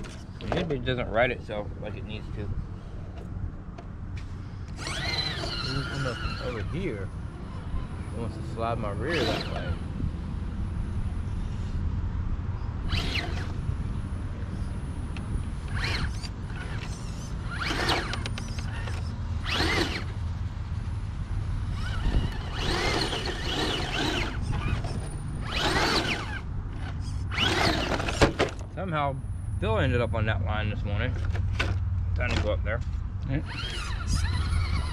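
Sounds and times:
electric motor whining: 4.6 - 10.0, 12.8 - 20.2, 21.6 - 28.6, 33.3 - 34.9
toy truck knocking over: 15.8 - 20.1, 21.8 - 28.6.

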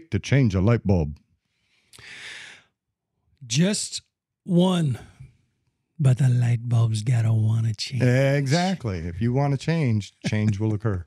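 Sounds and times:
person exhaling breathily: 2.0 - 2.6.

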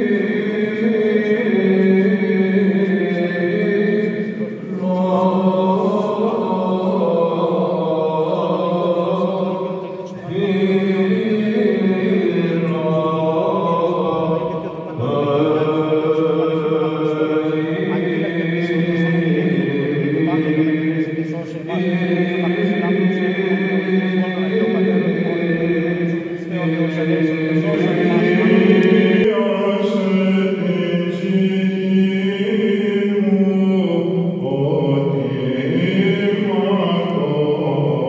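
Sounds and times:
men chanting: 0.0 - 38.0.

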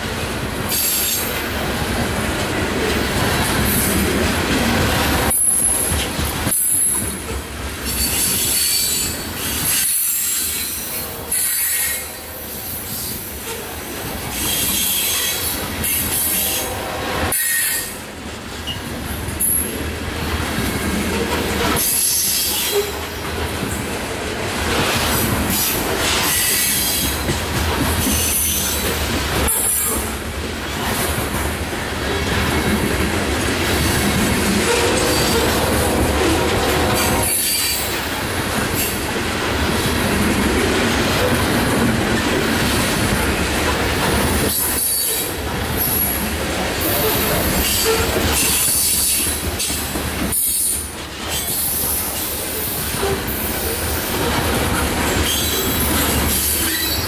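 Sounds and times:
train wheels rolling on rails: 0.0 - 57.0.

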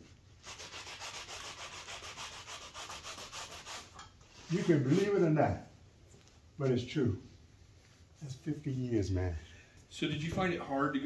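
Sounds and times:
paintbrush scrubbing canvas: 0.4 - 5.2.

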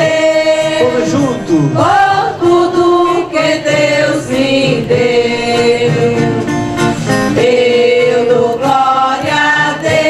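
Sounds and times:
voices singing a hymn: 0.0 - 10.0.

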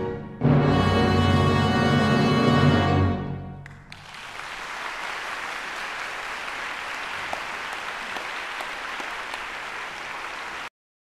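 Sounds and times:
audience applauding: 3.6 - 10.7.

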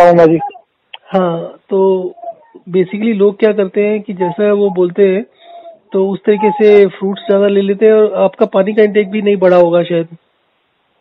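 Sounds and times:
person speaking over telephone: 0.0 - 10.2.

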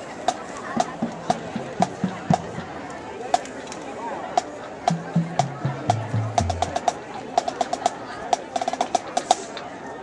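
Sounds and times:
murmur of crowd voices: 0.0 - 10.0
low bass notes: 5.0 - 6.8.

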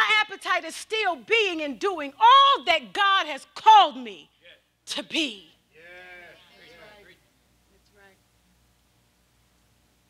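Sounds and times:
murmured words: 5.7 - 8.2.

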